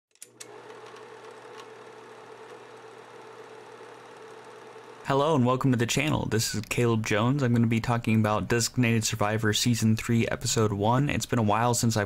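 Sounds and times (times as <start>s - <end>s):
film projector whirring: 0.2s - 7.1s.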